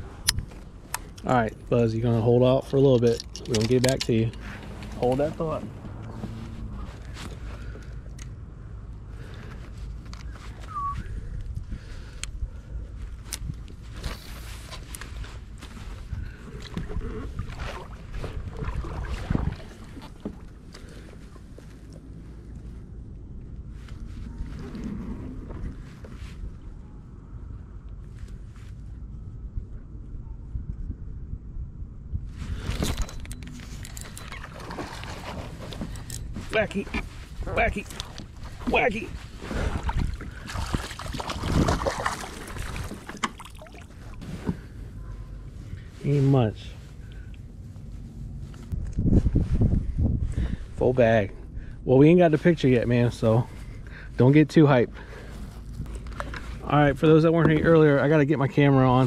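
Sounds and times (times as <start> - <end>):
wind rumble on microphone: 3.5 - 54.0.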